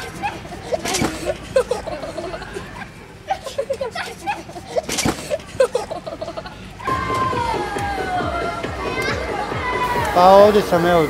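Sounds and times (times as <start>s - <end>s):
fast electronic music: 6.9s - 11.0s.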